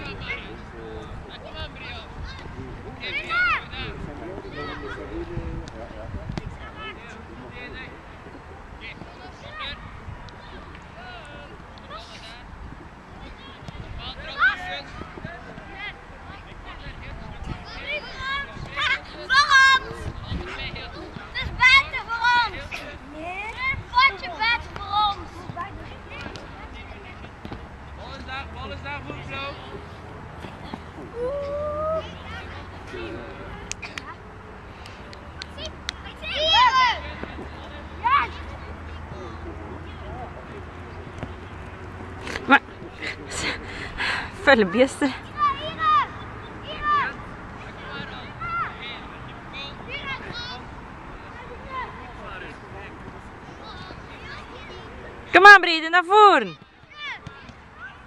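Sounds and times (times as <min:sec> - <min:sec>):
low outdoor background noise: 0:00.0 - 0:58.0
children shouting: 0:31.1 - 0:32.5, 0:36.2 - 0:37.1.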